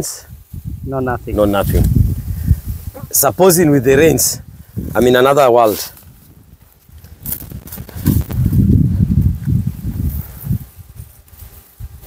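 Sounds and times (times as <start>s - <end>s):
footsteps on dry ground: 5.0s - 12.0s.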